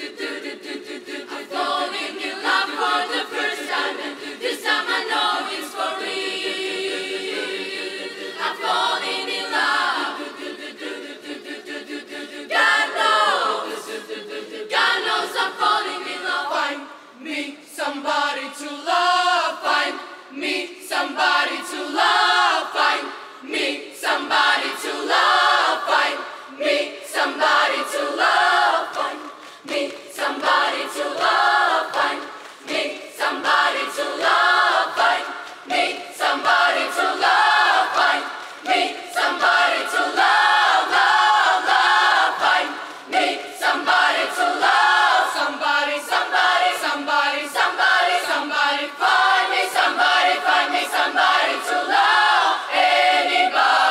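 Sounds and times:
girls' choir singing a cappella: 0:00.0 - 0:53.9.

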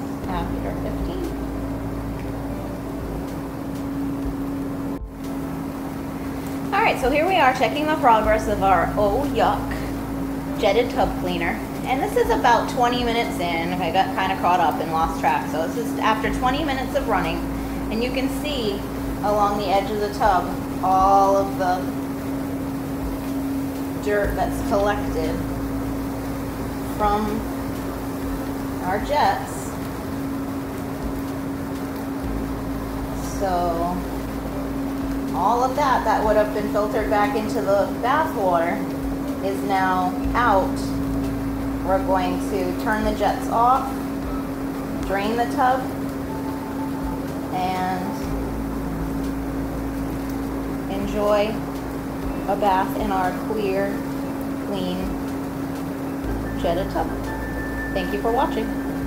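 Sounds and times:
bathtub jet pump humming: 0:00.0 - 0:59.0.

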